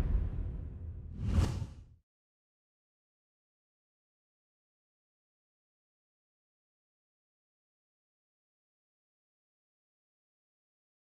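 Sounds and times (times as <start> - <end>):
deep whooshing rumble: 0.0 - 1.9
short swoosh: 0.0 - 1.9.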